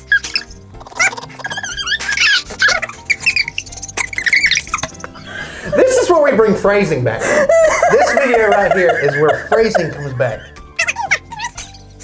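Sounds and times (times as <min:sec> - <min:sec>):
men giggling squeakily: 0:00.0 - 0:06.1, 0:07.2 - 0:11.9
background music: 0:00.0 - 0:12.0.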